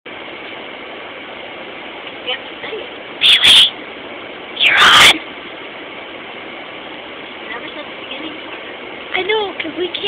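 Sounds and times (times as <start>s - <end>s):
bus running interior noise: 0.1s - 10.0s.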